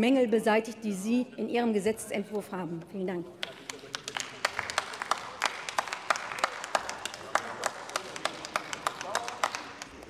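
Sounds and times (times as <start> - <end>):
people applauding: 3.4 - 10.0.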